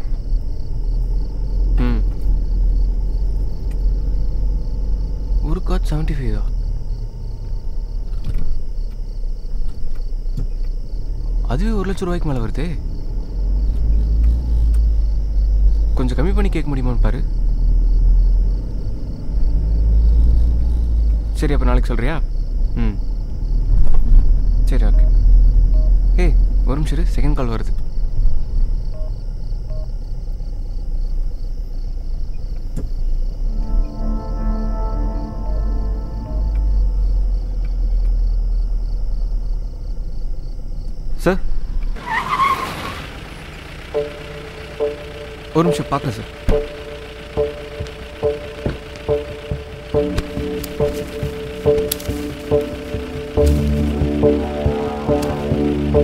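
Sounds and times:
low bass drone: 0:00.0 - 0:08.2, 0:22.5 - 0:27.1, 0:33.3 - 0:39.9, 0:43.8 - 0:56.0
car rumble inside cabin: 0:00.0 - 0:33.5, 0:34.3 - 0:56.0
suspenseful pulsing film score: 0:00.0 - 0:42.1, 0:43.2 - 0:56.0
film music with sustained tones: 0:33.4 - 0:38.8, 0:43.5 - 0:56.0.

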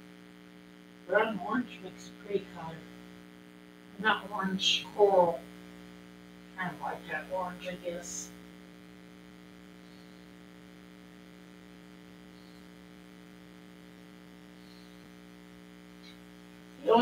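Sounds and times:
faint electrical hum: 0:00.0 - 0:17.0.

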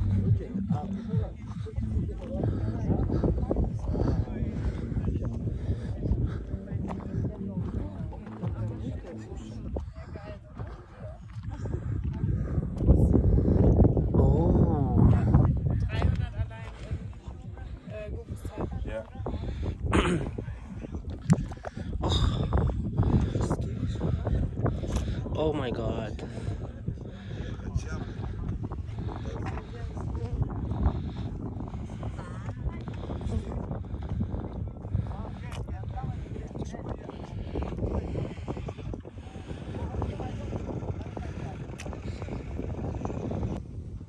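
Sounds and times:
faint voices talking: 0:00.0 - 0:44.0
wind rumbling on microphone: 0:00.0 - 0:44.0.

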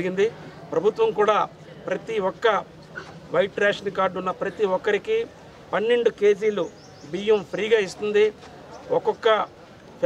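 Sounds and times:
man speaking: 0:00.0 - 0:02.7, 0:03.3 - 0:09.5.

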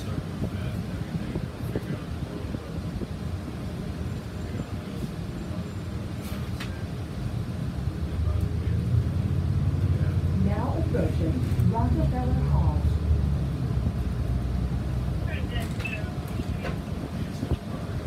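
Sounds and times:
bus engine and road rumble: 0:00.0 - 0:18.0.

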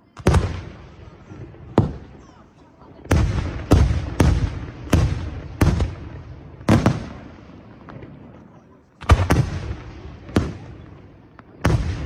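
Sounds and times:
rolling echo: 0:00.0 - 0:12.0.

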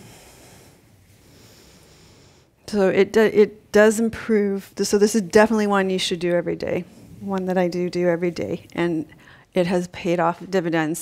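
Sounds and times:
woman breathing softly: 0:00.0 - 0:02.6, 0:09.1 - 0:09.5.

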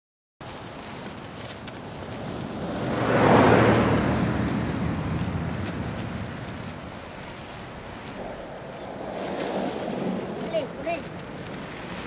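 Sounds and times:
vehicle passing on highway: 0:00.8 - 0:12.0.

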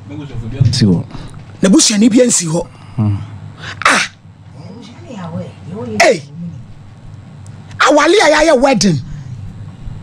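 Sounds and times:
breathy exclamation: 0:02.7 - 0:04.9.

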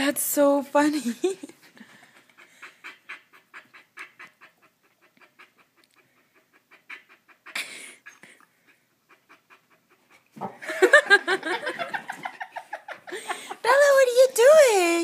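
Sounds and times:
dog panting: 0:01.3 - 0:11.9.

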